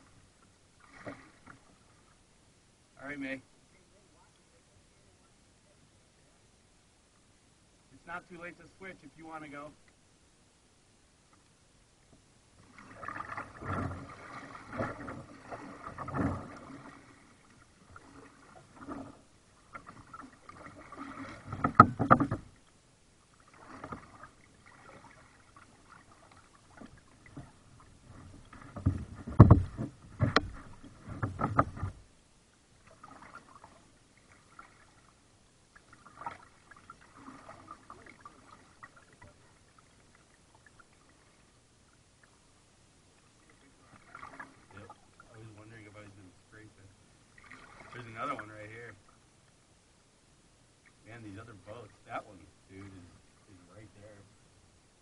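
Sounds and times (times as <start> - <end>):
paddle splashing water: 0.0 - 2.2, 12.1 - 49.6
paddle knocking plastic hull: 12.9 - 17.0, 17.9 - 22.6, 26.1 - 32.1.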